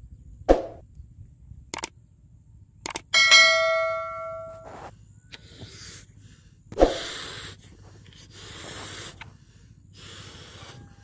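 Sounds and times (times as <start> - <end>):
quick clicks: 1.7 - 2.0, 2.8 - 3.1
bright bell chime: 3.2 - 4.7.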